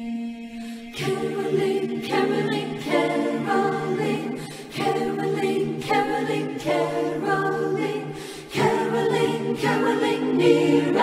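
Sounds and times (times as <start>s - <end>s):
choir singing unaccompanied: 0.0s - 11.0s.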